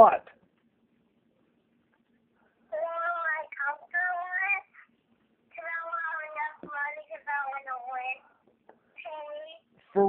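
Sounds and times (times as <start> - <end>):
faint low hum: 0.0 - 10.0
child's voice through phone speaker: 2.7 - 4.9, 5.5 - 8.3, 9.0 - 9.7.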